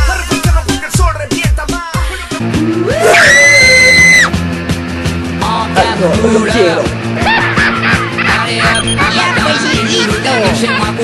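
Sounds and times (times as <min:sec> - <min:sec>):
background music with steady beat: 0:00.0 - 0:11.0
loud high-pitched scream: 0:02.9 - 0:04.3.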